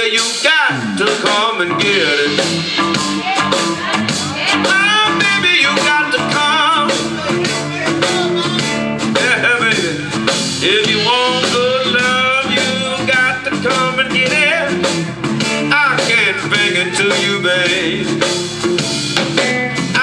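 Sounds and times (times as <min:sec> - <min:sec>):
blues band playing: 0:00.0 - 0:20.0
wavering lead melody: 0:01.7 - 0:19.9.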